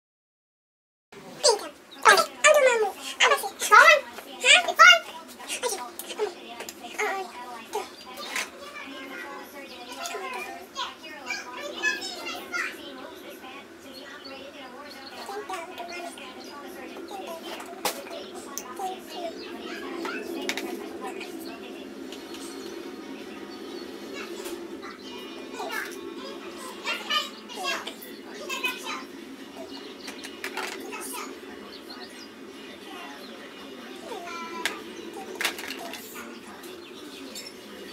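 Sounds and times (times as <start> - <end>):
young child talking and babbling: 1.3 - 37.9.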